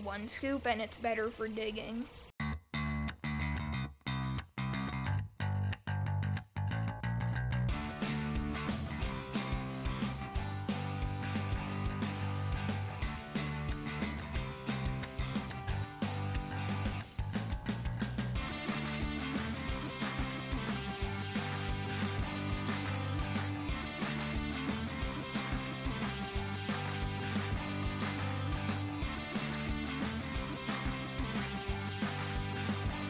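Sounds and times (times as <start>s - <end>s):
background music: 7.7s - 33.0s.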